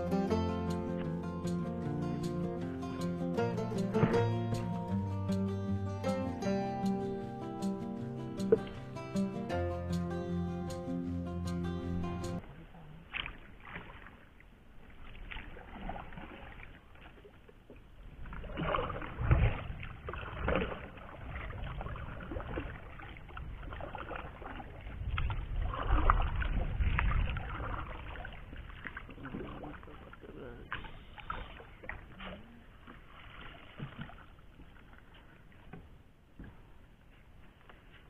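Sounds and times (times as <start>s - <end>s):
water splashing and dripping: 3.8s - 5.4s, 8.0s - 9.6s, 12.3s - 36.6s
low rumbles: 18.1s - 31.4s.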